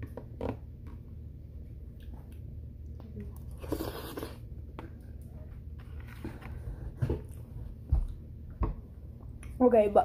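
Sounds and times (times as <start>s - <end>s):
soft chewing: 1.6s - 8.3s.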